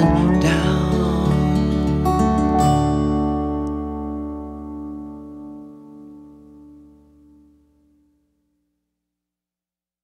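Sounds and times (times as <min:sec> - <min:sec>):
acoustic guitar chord ringing: 0:00.0 - 0:08.2.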